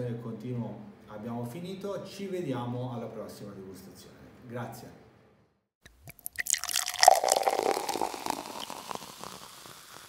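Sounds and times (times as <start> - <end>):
fizzing crackle: 5.9 - 10.0
wine pouring into a glass: 5.9 - 10.0.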